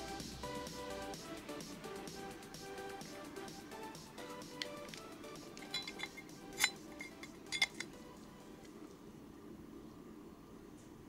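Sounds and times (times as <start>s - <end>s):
background music: 0.0s - 8.8s
metal pipe clinking: 5.5s - 8.0s.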